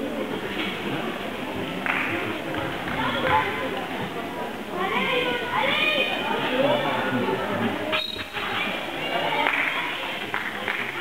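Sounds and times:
voices echoing in a hall: 0:00.0 - 0:11.0.

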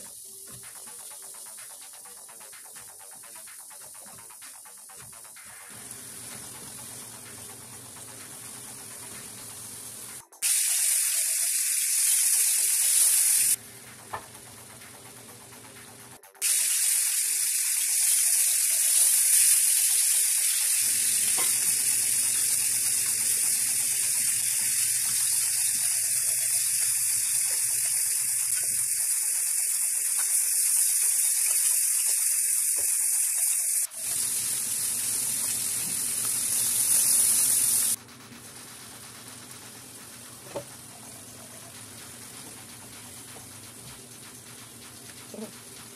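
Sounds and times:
curry sizzling in a frying pan: 0:16.4 - 0:38.0.

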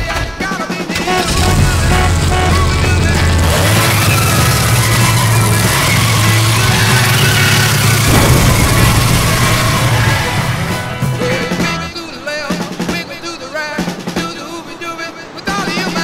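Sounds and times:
music: 0:00.0 - 0:16.0
car engine rumbling: 0:01.1 - 0:11.4.

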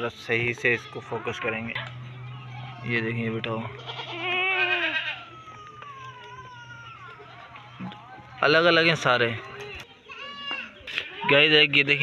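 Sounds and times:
goat bleating: 0:03.7 - 0:07.2.

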